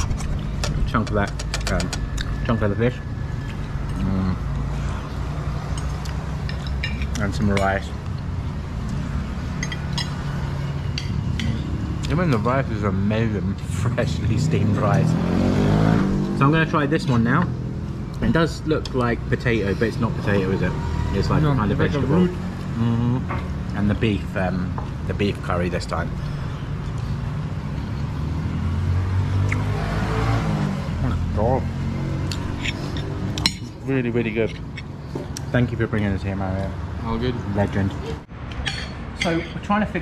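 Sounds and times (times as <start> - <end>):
vehicle engine humming: 0.0 - 40.0
metal spoon clinking on dish: 5.7 - 7.8, 9.6 - 10.3, 38.6 - 39.6.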